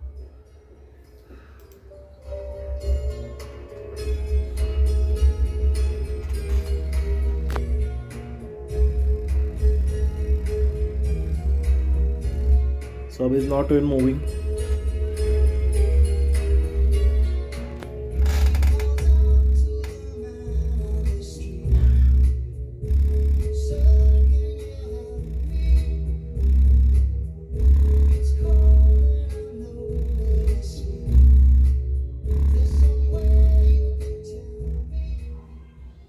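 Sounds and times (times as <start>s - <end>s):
song with heavy bass through subwoofer: 1.8s - 36.0s.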